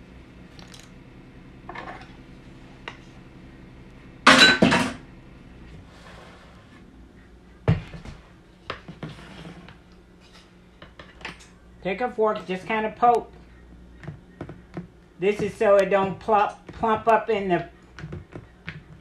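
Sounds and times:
utensils and dishes clattering: 0:04.3 - 0:05.0.

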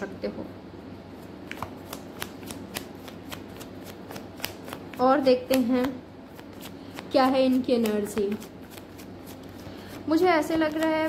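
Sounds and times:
cards being shuffled: 0:01.2 - 0:11.0.

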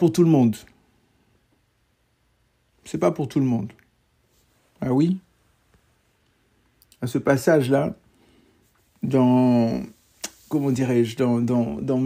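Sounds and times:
man speaking: 0:00.0 - 0:00.8, 0:02.8 - 0:03.9, 0:04.7 - 0:05.3, 0:06.9 - 0:08.0, 0:09.0 - 0:12.0.

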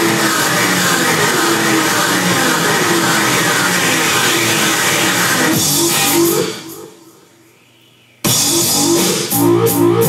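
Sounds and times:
noisy experimental electronic music: 0:00.0 - 0:10.0.

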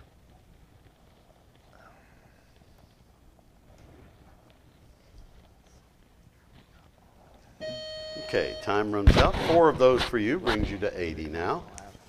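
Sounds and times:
buzzy electronic timer tone: 0:07.6 - 0:09.0.

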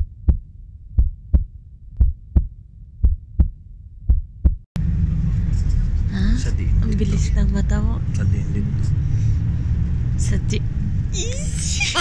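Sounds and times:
heartbeat thumps: 0:00.0 - 0:06.8
faint low hum: 0:00.0 - 0:12.0.

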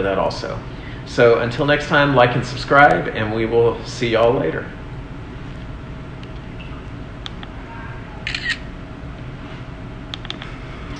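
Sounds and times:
aquarium pumps humming: 0:00.0 - 0:10.9.

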